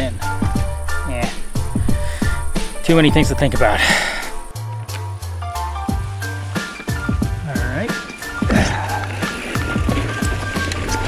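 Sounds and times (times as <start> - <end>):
bass line: 0.0 - 6.2
background music with beat: 0.0 - 11.0.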